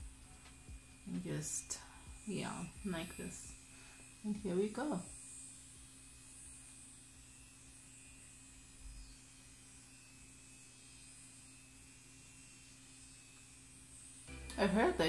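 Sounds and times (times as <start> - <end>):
electric facial brush buzzing: 0.0 - 15.0.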